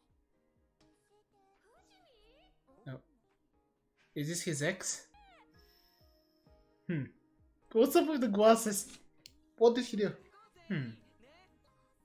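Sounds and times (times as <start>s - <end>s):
faint background music: 0.0s - 12.0s
person humming: 6.9s - 7.1s, 10.7s - 11.0s.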